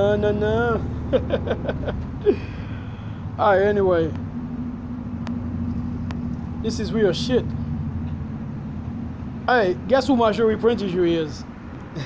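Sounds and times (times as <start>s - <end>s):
low mechanical hum and rumble: 0.0s - 12.0s.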